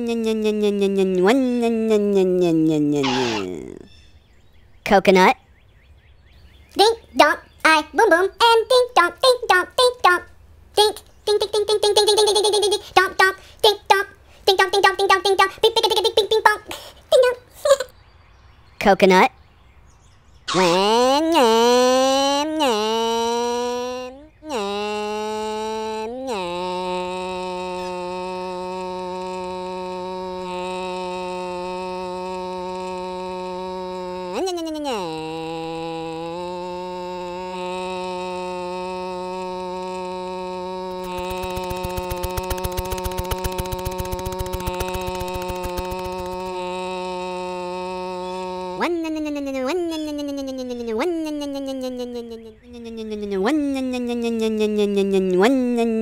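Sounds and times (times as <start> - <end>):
cartoonish puppet voice: 0.0 - 3.9, 6.8 - 17.9, 20.5 - 56.0
buzzy electronic tone: 41.1 - 46.5
fast run of clicks: 41.1 - 46.5.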